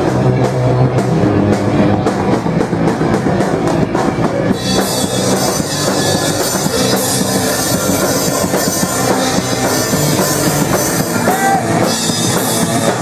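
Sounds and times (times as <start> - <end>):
punk rock band playing: 0.0 - 13.0.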